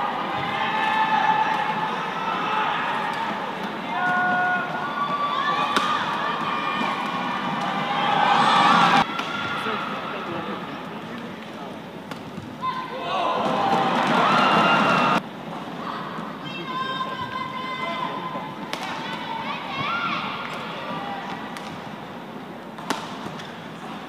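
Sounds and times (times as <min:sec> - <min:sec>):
racket striking shuttlecock: 0:22.8 - 0:23.5.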